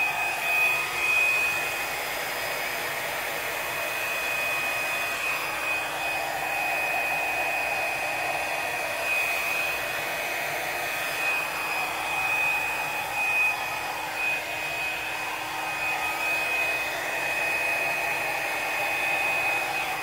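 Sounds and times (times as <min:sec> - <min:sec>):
hair dryer running: 0:00.0 - 0:20.0.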